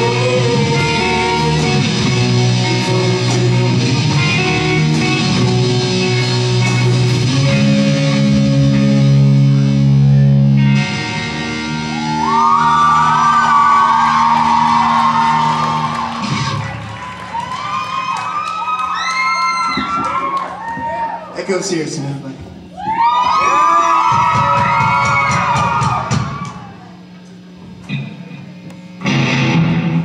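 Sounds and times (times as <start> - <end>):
live rock band playing: 0.0 - 17.2, 29.0 - 30.0
electric guitar chords: 0.0 - 18.0, 27.0 - 30.0
audience shouting and whooping: 11.5 - 21.4, 22.7 - 27.1.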